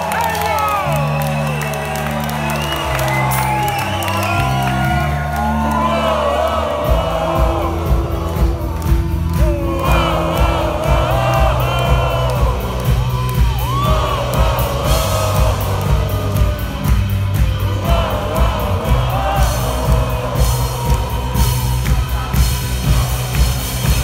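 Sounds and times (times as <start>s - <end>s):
crowd voices: 0.0s - 24.0s
drum beat: 6.0s - 24.0s
live rock band playing: 6.9s - 24.0s.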